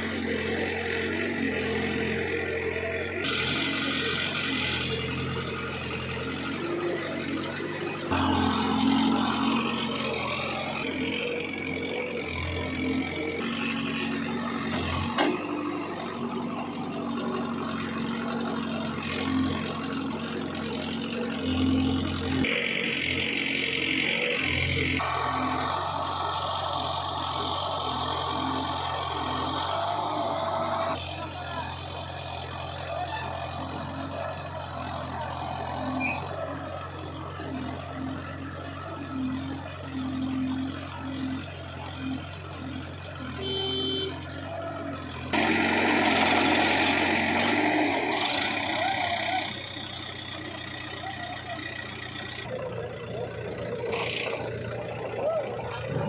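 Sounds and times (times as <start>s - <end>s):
backhoe diesel engine running: 0.0s - 56.0s
tractor engine running: 0.0s - 56.0s
digging and loading soil: 12.3s - 19.6s.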